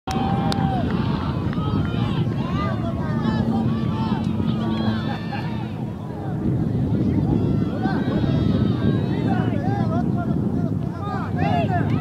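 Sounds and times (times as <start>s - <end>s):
wind rumbling on microphone: 0.1s - 12.0s
chatter of many voices: 0.5s - 12.0s.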